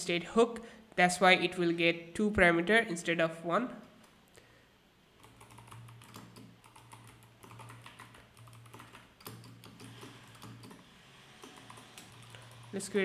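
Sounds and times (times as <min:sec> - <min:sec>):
typing on computer keyboard: 0:05.2 - 0:12.8.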